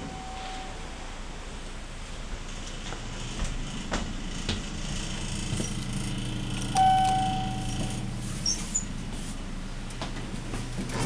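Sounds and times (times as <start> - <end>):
elevator chime: 0.0 - 1.0, 6.7 - 8.1
steady low hum: 0.0 - 11.0.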